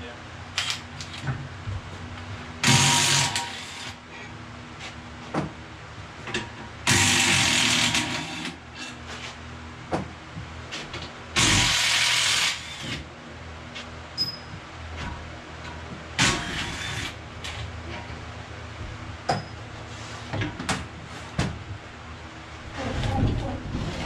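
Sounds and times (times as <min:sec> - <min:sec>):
power tool bursts: 0:02.6 - 0:03.9, 0:06.8 - 0:08.6, 0:11.4 - 0:13.0.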